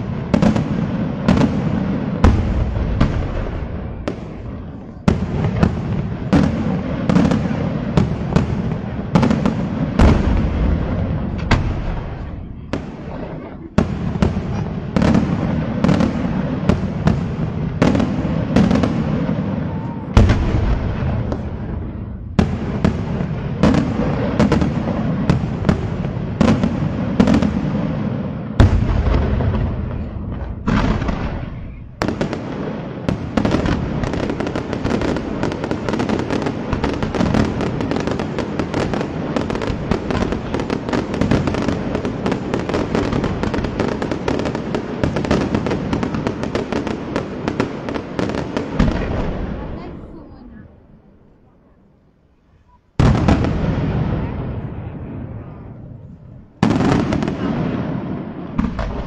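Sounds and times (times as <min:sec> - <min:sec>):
fireworks barrage of bangs and crackle: 0:00.0 - 0:59.0.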